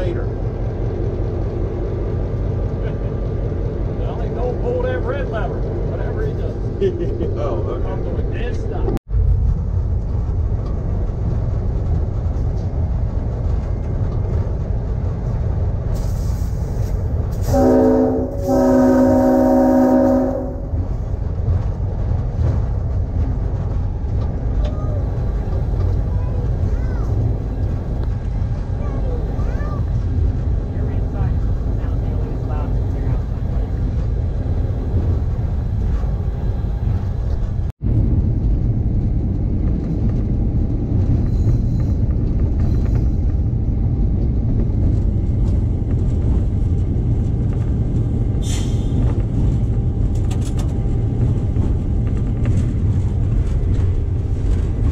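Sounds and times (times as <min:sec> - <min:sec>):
diesel locomotive engine rumble: 0:00.0 - 0:54.9
locomotive horn blasts: 0:17.4 - 0:21.0.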